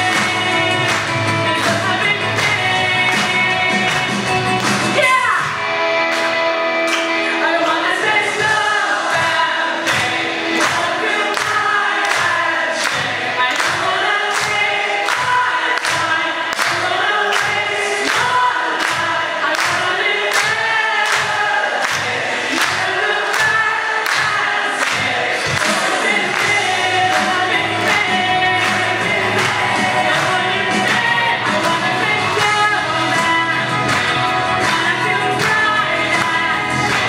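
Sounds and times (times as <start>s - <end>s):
handclaps: 0.0s - 7.2s, 9.9s - 37.0s
choir singing with solo voice: 7.4s - 37.0s.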